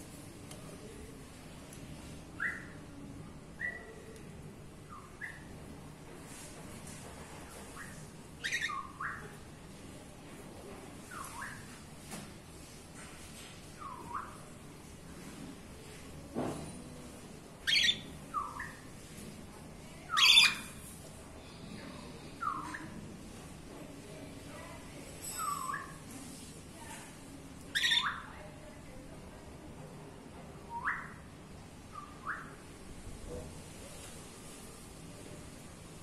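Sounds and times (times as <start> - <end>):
cockatiels chirping and squawking: 8.4 - 9.3, 17.7 - 18.8, 20.2 - 20.7, 27.8 - 28.3.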